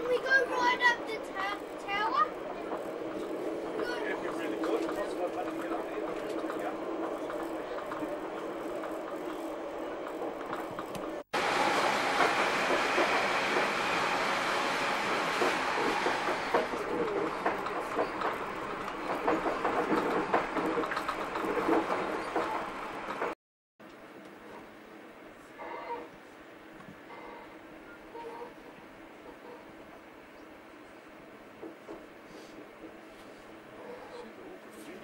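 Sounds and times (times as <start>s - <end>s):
train rumbling inside carriage: 0.0s - 23.4s, 26.6s - 35.0s
train wheels rattling and clattering: 0.0s - 23.4s.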